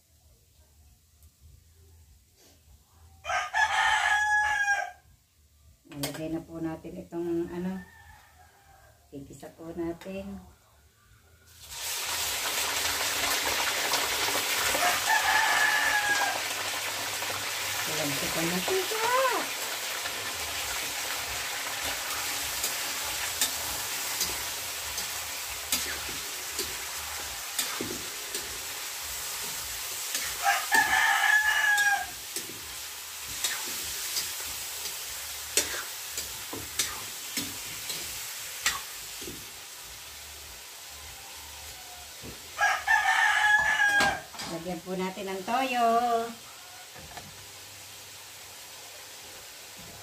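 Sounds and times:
rooster crowing: 3.2 - 5.1, 7.6 - 9.1, 14.6 - 16.7, 30.3 - 32.3, 40.8 - 44.4, 46.3 - 47.2
meat sizzling in a wok: 11.5 - 50.0
metal spatula scraping pan: 21.8 - 28.7.

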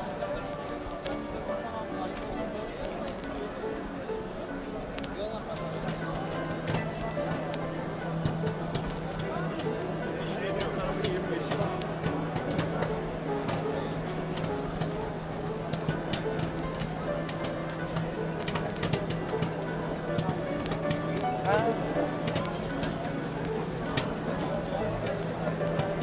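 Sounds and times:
carnival music: 0.0 - 26.0
crowd murmuring: 0.0 - 26.0
sharp crackling clicks: 4.9 - 9.9, 10.6 - 26.0.

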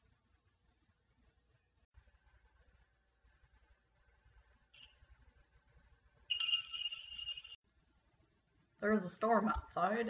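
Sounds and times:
chime-like electronic tone: 6.3 - 7.6.

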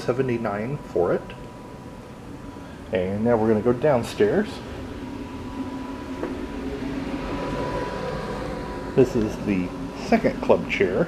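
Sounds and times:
faint high whine: 0.0 - 11.0
low mechanical hum: 0.0 - 11.0.

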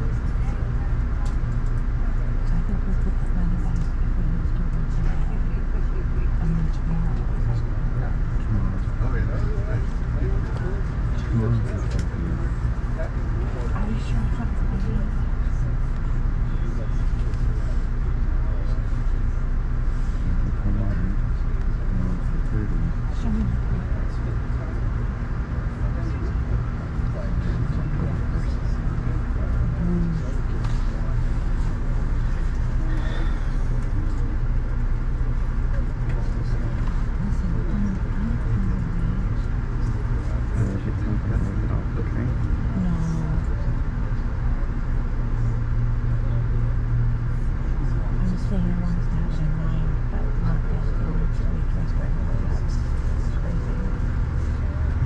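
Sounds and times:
passengers talking quietly: 0.0 - 55.0
train low drone: 0.0 - 55.0.

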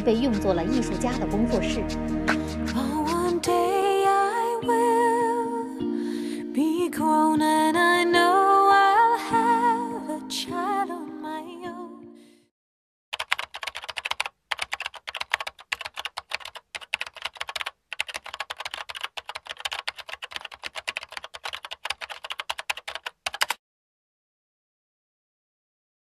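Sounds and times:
computer keyboard typing: 13.1 - 23.6.

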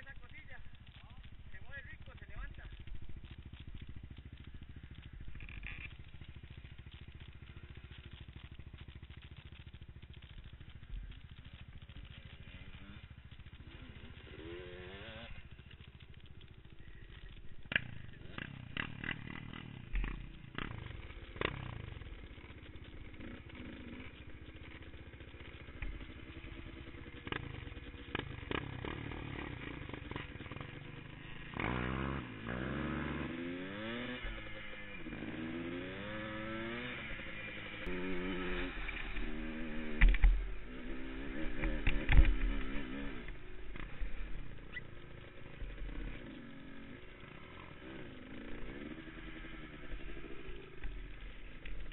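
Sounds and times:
quad bike engine revving: 0.0 - 51.9
sharp knocks and rattles: 41.4 - 42.7.

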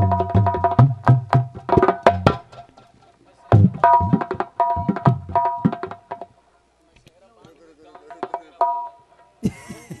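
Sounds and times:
hand drum strokes: 0.0 - 6.3.

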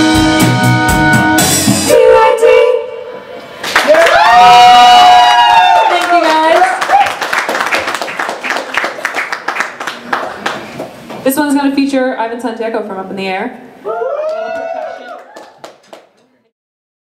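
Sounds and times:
women singing unaccompanied: 1.9 - 3.0
audience clapping: 3.6 - 4.4, 5.6 - 11.0, 14.2 - 16.3.

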